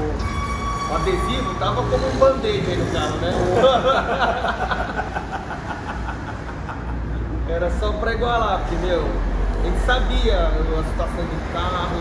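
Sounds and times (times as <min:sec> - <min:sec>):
men laughing: 0:02.0 - 0:07.5.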